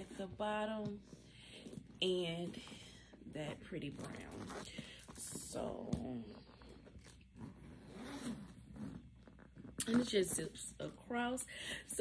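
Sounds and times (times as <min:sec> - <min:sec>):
zipper rasping open: 0:00.9 - 0:10.6.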